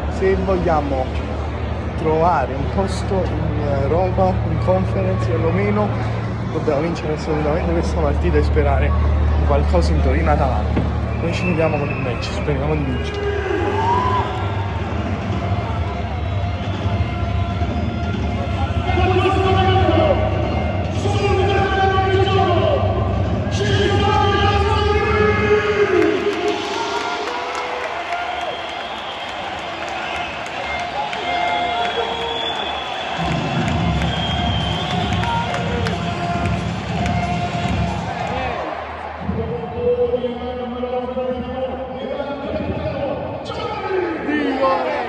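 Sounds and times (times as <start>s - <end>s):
stadium crowd noise: 0.0s - 45.0s.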